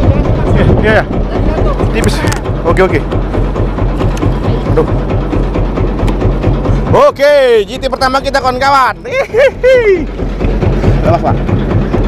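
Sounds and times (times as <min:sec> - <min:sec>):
boat engine idling: 0:00.0 - 0:12.0.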